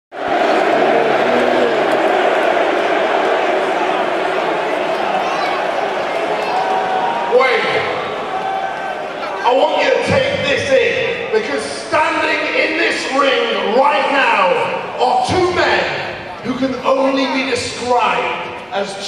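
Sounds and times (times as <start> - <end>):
arena crowd cheering: 0.1 - 19.0
man speaking over public address: 7.2 - 8.2, 9.2 - 19.0.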